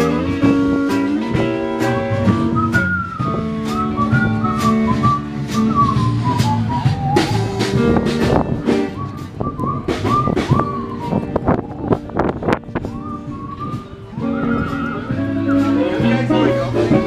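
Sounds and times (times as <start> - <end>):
bass and drums: 0.0 - 17.0
high lead melody with sliding notes: 0.0 - 17.0.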